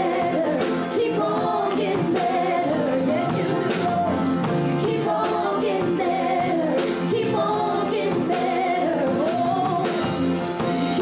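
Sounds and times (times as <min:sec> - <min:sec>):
gospel group singing in harmony: 0:00.0 - 0:11.0.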